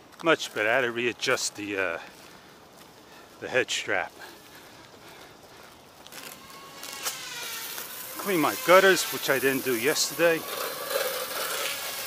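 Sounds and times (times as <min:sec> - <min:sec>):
hose spraying water: 0:06.0 - 0:12.0.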